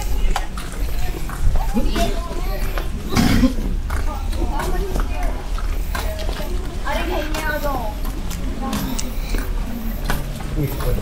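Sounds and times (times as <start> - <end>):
footsteps on stone paving: 0.0 - 11.0
people chattering: 0.0 - 11.0.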